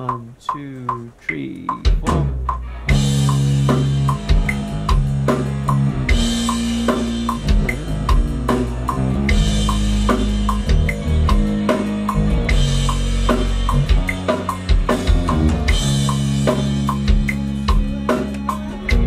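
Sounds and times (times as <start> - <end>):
drum backing track: 0.0 - 19.0
electric bass low notes: 1.8 - 19.0.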